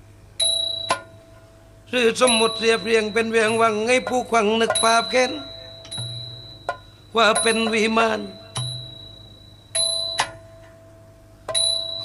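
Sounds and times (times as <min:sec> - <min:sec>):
metallic bell-like ring: 0:00.4 - 0:01.3, 0:04.8 - 0:10.8, 0:11.5 - 0:12.0.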